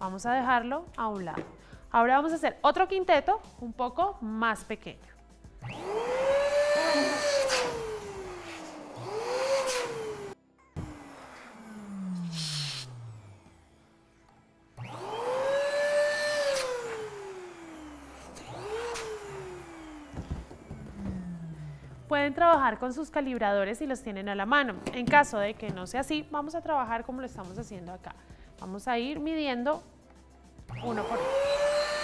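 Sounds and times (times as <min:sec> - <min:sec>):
balloon inflator motor whine: 0:05.6 - 0:22.1, 0:30.7 - 0:32.0.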